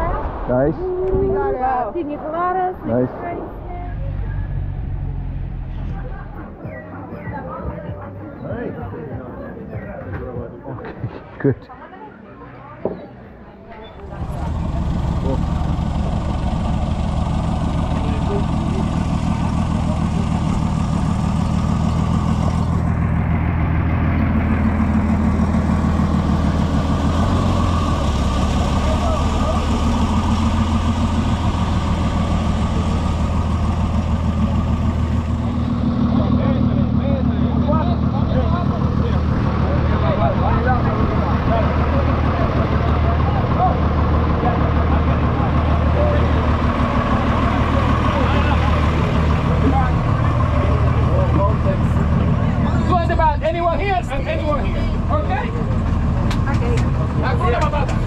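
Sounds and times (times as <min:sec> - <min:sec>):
people talking: 0:00.0 - 0:04.7, 0:05.7 - 0:20.4, 0:28.4 - 0:31.6, 0:35.4 - 0:58.0
truck engine idling: 0:02.4 - 0:11.9, 0:12.6 - 0:58.0.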